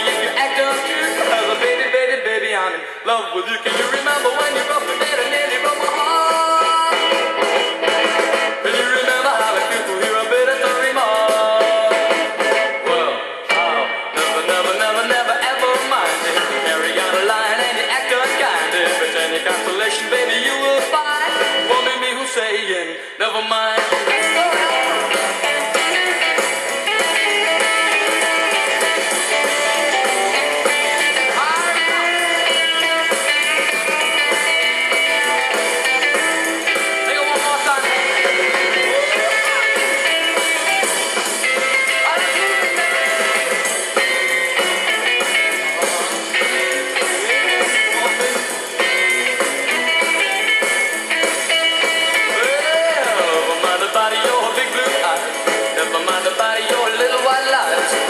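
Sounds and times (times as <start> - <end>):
rock and roll guitar instrumental: 0.0 - 58.0.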